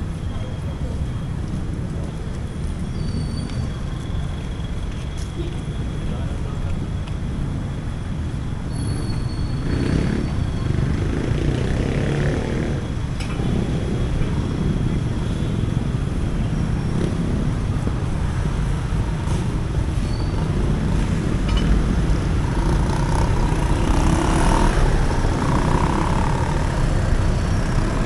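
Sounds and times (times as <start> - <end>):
busy road traffic rumble: 0.0 - 28.0.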